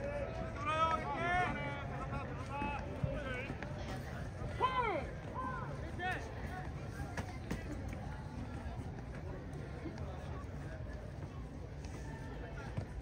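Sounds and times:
low crowd murmur: 0.0s - 13.0s.

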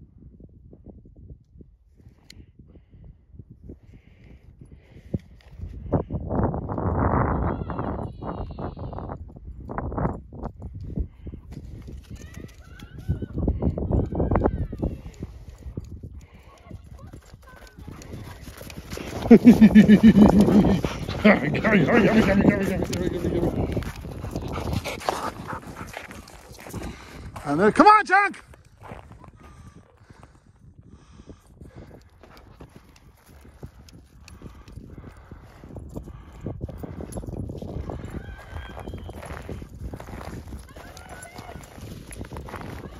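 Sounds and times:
footsteps crunching on snow: 17.8s - 27.6s, 39.1s - 42.9s
dog whimpering: 19.4s - 23.7s.

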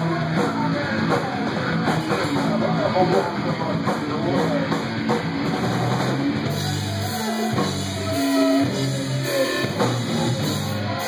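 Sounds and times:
drum kit: 0.0s - 11.0s
electric guitar: 0.0s - 11.0s.

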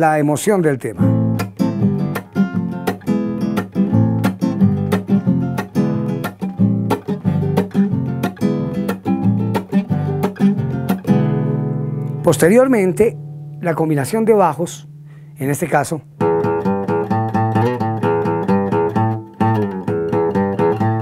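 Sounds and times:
guitar strumming chords: 1.0s - 21.0s.

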